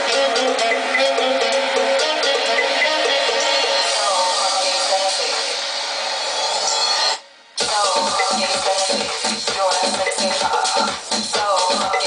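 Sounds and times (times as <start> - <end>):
melodic track: 0.0 - 5.6, 7.6 - 12.0
electronic track with steady beat: 0.0 - 12.0.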